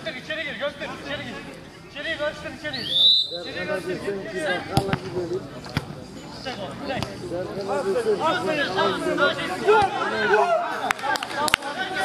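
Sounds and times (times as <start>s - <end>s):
players shouting: 7.9s - 12.0s.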